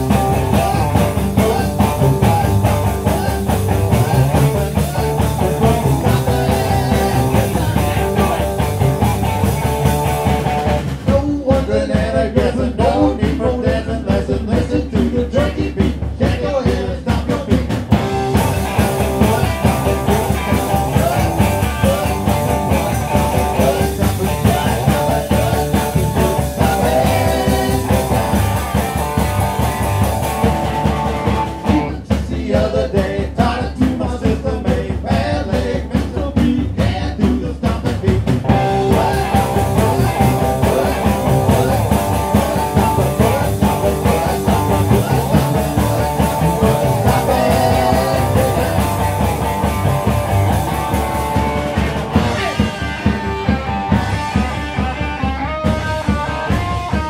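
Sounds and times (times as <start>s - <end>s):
garage rock band playing: 0.0s - 57.0s
harmonica long notes: 38.5s - 57.0s.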